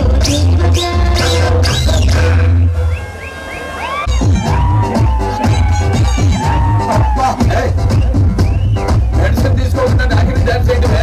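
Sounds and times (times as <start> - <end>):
heavy bass beat: 0.0 - 3.1, 4.1 - 11.0
electronic dance music: 0.0 - 11.0.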